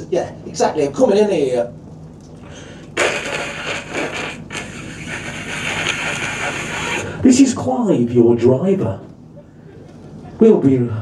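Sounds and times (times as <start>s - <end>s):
man making hissing mouth noise: 3.0s - 7.2s.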